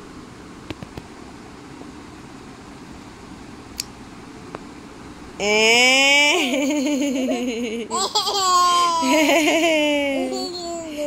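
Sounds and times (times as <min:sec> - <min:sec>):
toddler laughing: 0:06.3 - 0:11.0.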